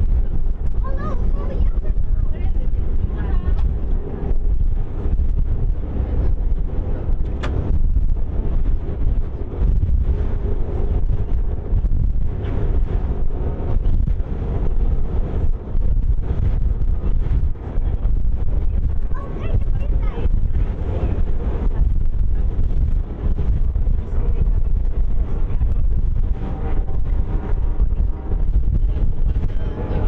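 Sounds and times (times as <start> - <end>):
ferry running noise: 0.0 - 30.0
wind buffeting microphone: 0.0 - 30.0.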